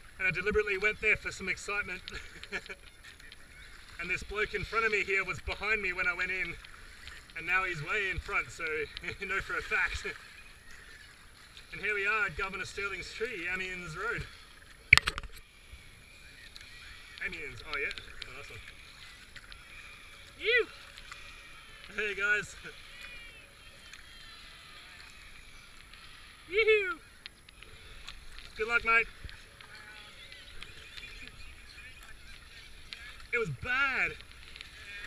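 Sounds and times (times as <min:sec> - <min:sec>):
paddle strokes: 0:00.0 - 0:35.0
water trickling against hull: 0:00.0 - 0:35.0.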